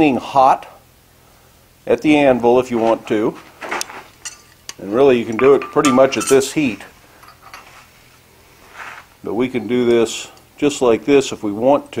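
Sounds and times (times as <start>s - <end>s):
chisel handling noises: 3.7s - 7.7s.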